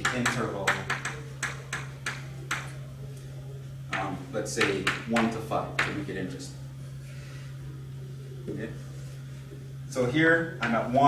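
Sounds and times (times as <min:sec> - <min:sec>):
chalk tapping on a blackboard: 0:00.0 - 0:02.7, 0:03.9 - 0:06.0
steady low hum: 0:00.0 - 0:11.0.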